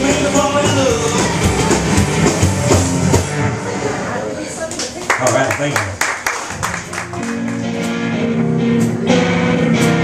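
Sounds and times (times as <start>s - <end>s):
rockabilly band playing: 0.0s - 4.0s, 5.3s - 10.0s
people clapping: 4.7s - 8.0s.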